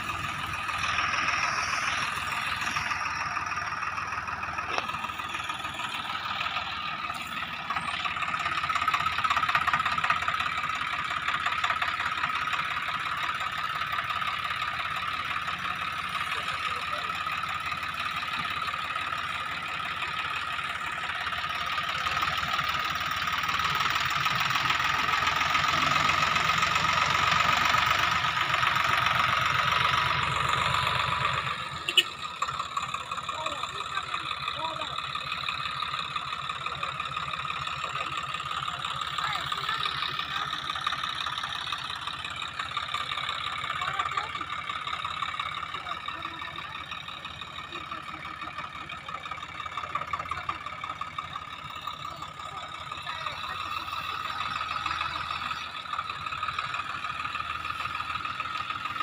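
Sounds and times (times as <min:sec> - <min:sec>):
tractor diesel engine running: 0:00.0 - 0:59.0.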